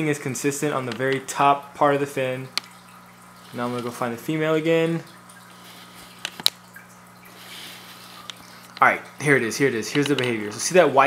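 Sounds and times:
steady low hum: 0:00.0 - 0:11.0
water trickling: 0:00.0 - 0:11.0
sharp clicks: 0:09.9 - 0:10.4.

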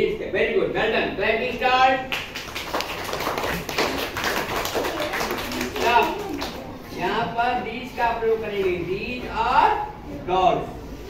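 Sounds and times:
children clapping: 0:02.1 - 0:06.8.

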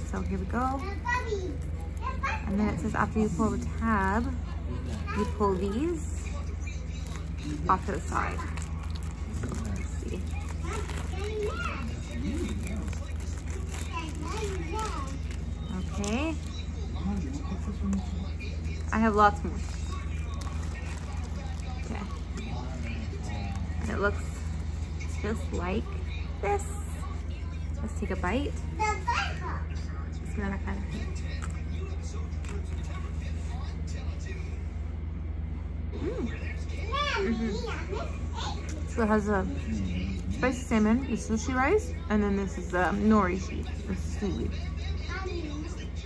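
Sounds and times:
steady low hum: 0:00.0 - 0:46.0
soft crunches of chewing: 0:03.6 - 0:25.1, 0:30.9 - 0:33.8.

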